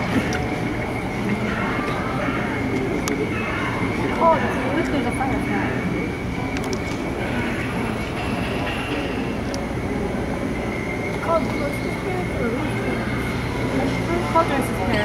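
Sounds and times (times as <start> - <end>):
faint murmured voices: 0.0 - 15.0
low hum: 0.0 - 15.0.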